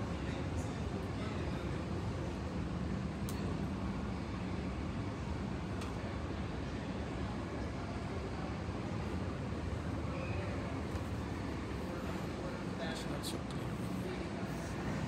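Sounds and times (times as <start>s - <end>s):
low rumble of aircraft and vehicles: 0.0s - 15.0s.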